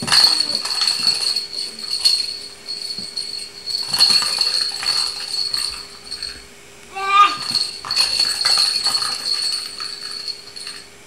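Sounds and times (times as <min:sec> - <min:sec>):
toy ball bell jingling: 0:00.0 - 0:06.5, 0:07.3 - 0:10.9.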